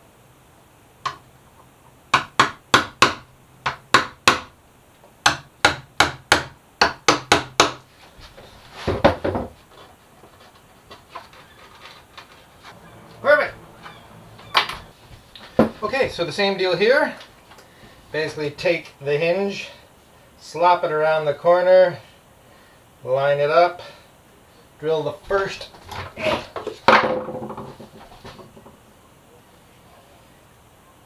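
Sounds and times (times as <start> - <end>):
hammer tapping a chisel: 5.2 - 7.8.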